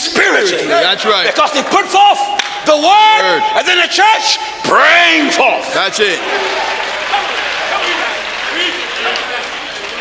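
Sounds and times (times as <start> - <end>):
congregation applauding: 5.8 - 10.0.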